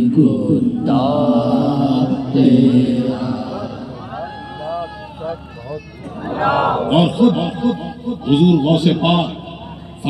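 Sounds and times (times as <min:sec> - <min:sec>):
male voices chanting: 0:00.0 - 0:09.9.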